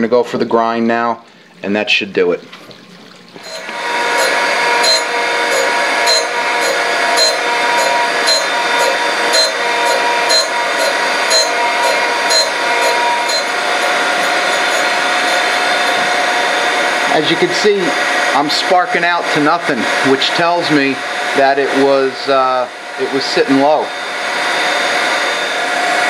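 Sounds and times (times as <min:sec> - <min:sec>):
surface grinder running: 0:03.4 - 0:26.0.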